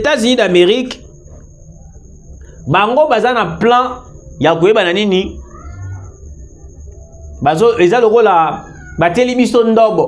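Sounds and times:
man speaking: 0.0s - 1.1s, 2.6s - 5.4s, 7.4s - 10.0s
faint high whine: 0.0s - 10.0s.

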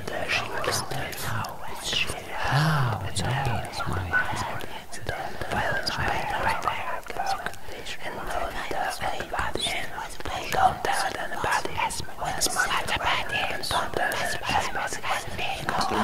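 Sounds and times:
person whispering: 0.0s - 16.0s.

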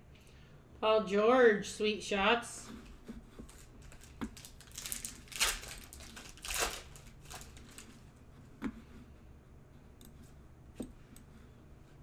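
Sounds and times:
foil packs crinkling: 3.5s - 8.0s.

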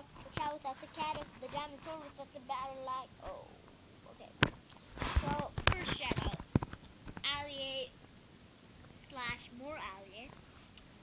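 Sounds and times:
knocks and rubs handling device: 0.1s - 2.2s, 4.4s - 7.3s.

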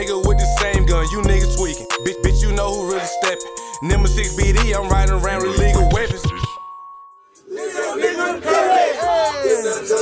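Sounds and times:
song: 0.0s - 10.0s
men shouting together: 7.5s - 10.0s.

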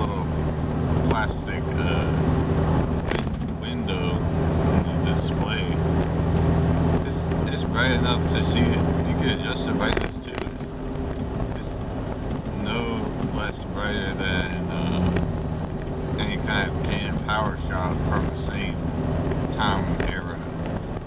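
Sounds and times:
man talking: 0.0s - 0.4s, 1.0s - 2.3s, 3.0s - 5.9s, 7.0s - 10.7s, 11.5s - 11.8s, 12.5s - 15.2s, 16.1s - 18.8s, 19.5s - 20.6s
car engine drone: 0.0s - 21.0s
road noise: 0.0s - 21.0s.

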